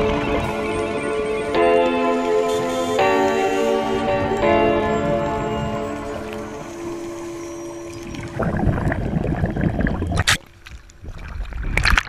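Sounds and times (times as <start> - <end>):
background music: 0.0 - 8.4
water rushing and splashing: 0.0 - 12.0
sharp water splash: 7.9 - 12.0.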